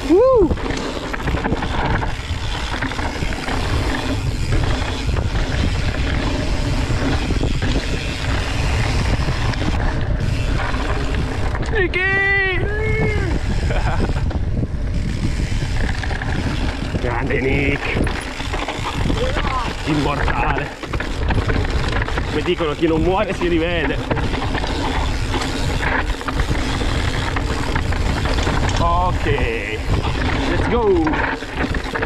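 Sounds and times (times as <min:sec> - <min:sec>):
bike tyres rolling on dirt: 0:00.0 - 0:32.0
wind rumble on microphone: 0:00.0 - 0:32.0
rider shouting: 0:11.8 - 0:13.5.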